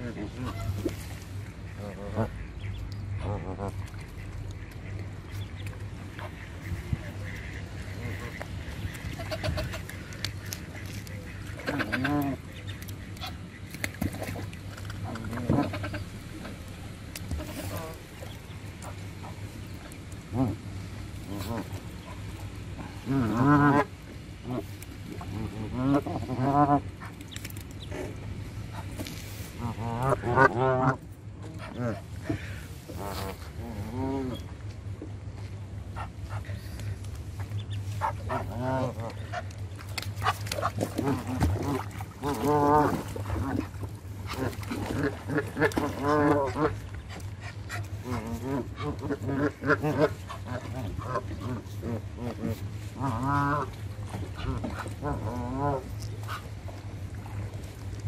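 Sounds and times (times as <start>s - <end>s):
geese calling: 0.0s - 34.6s, 35.8s - 57.7s.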